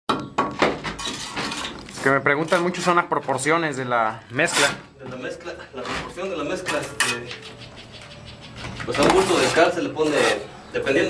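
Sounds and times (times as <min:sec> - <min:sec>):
trowel scraping mortar: 0:00.8 - 0:03.0, 0:04.3 - 0:05.0, 0:08.9 - 0:10.5.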